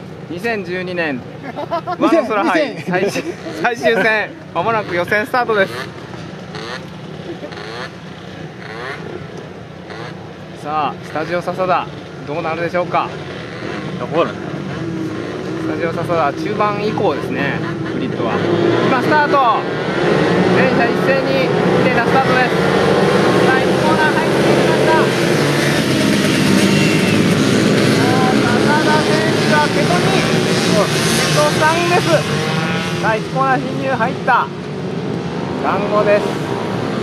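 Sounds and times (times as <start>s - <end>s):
kart engines droning: 0.0s - 37.0s
racing motorcycles revving: 0.0s - 37.0s.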